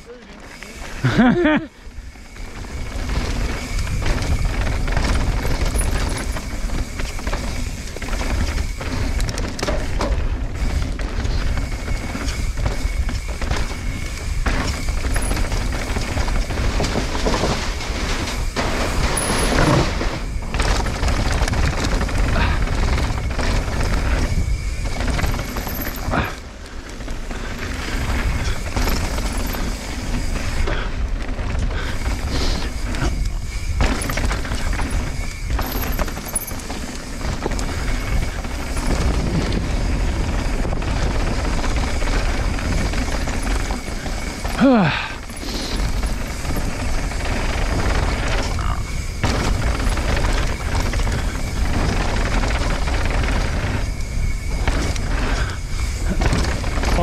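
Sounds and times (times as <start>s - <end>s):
bike rattling and knocking: 0.0s - 57.0s
tyres on dirt and rock: 0.0s - 57.0s.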